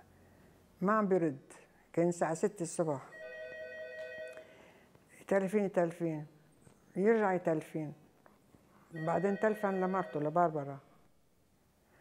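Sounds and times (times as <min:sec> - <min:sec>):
desk telephone ringing: 0:03.1 - 0:04.5, 0:09.0 - 0:10.7.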